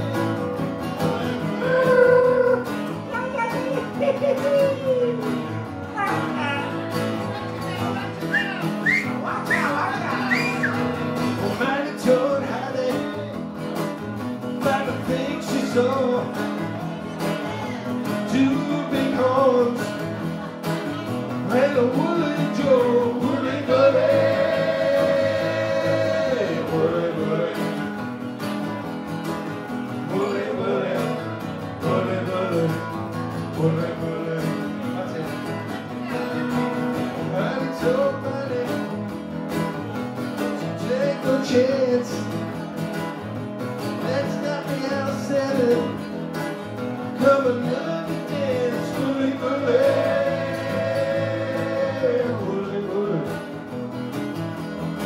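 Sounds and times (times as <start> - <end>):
acoustic guitars strummed and picked: 0.0 - 55.0.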